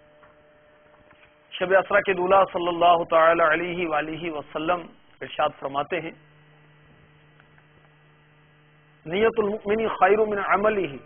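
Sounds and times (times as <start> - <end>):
faint electrical hum: 0.0 - 11.0
man speaking: 1.6 - 6.2, 9.1 - 11.0.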